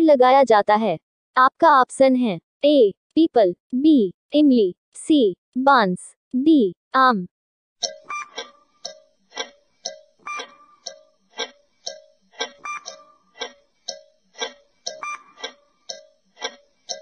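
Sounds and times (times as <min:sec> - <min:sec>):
clock ticking: 0:07.8 - 0:17.0.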